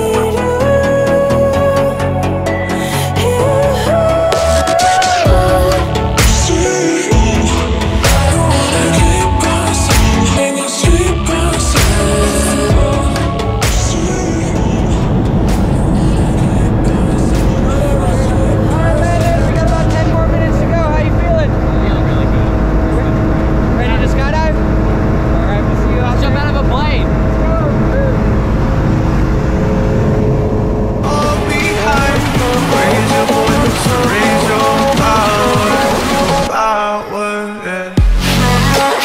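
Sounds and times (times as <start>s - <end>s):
plane engine and propeller drone: 12.0s - 36.5s
people talking: 16.8s - 24.6s, 25.3s - 28.3s, 31.0s - 37.4s.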